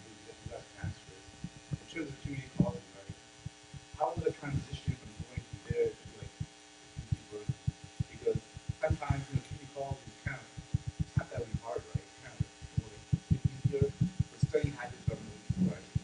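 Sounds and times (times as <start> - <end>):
faint speech: 0.0 - 1.2, 1.8 - 3.2, 4.0 - 6.3, 7.0 - 15.9
electrical hum: 0.0 - 16.0.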